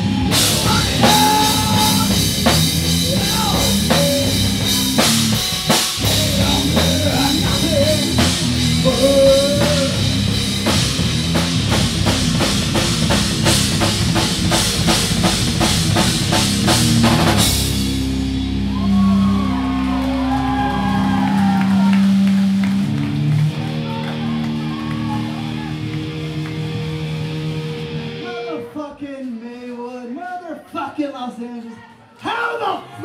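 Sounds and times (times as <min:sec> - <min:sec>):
voices shouting: 0:00.0 - 0:07.7
drum kit: 0:00.0 - 0:28.5
bass guitar: 0:00.0 - 0:28.7
electric guitar: 0:00.0 - 0:28.8.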